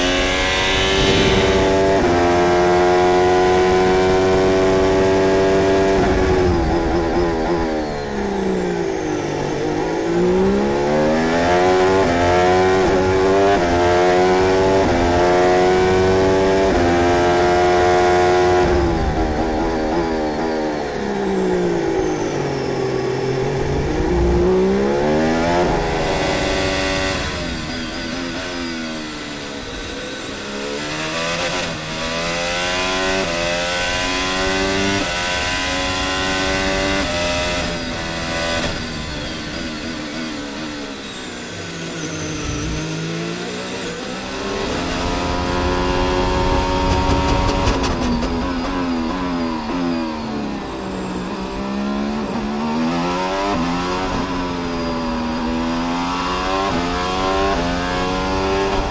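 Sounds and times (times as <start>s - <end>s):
racing car engine shifting gears: 0.0s - 58.9s.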